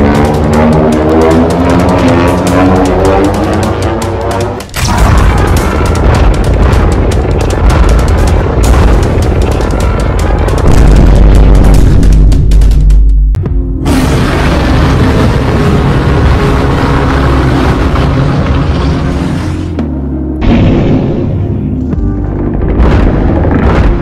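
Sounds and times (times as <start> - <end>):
loud music: 0.0 - 11.8
energy beams crackling: 0.0 - 12.8
heavy deep boom: 4.7 - 24.0.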